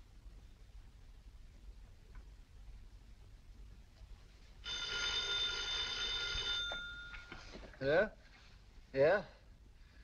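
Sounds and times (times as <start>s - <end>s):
telephone bell ringing: 4.6s - 7.6s
man speaking: 8.9s - 9.4s.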